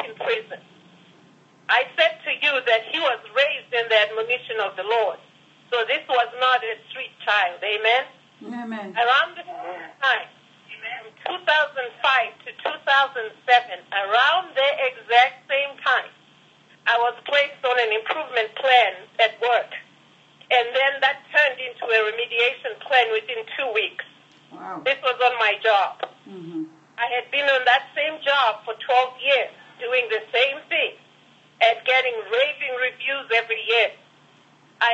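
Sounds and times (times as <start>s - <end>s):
woman talking: 0.0s - 0.6s, 1.7s - 8.2s, 9.0s - 16.2s, 16.9s - 19.8s, 20.5s - 26.1s, 27.0s - 31.0s, 31.6s - 34.0s.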